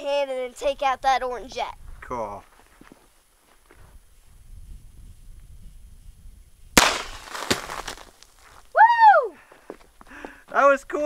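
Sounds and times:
revolver shot: 0:06.8 - 0:07.9
sharp crack: 0:06.8 - 0:08.4.

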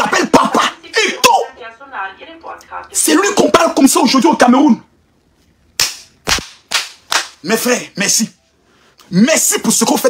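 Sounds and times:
man clapping hands: 0:05.8 - 0:07.4.

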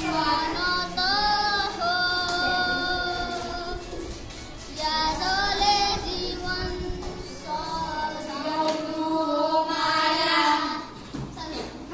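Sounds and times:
boy singing: 0:00.0 - 0:04.1, 0:04.7 - 0:11.6.

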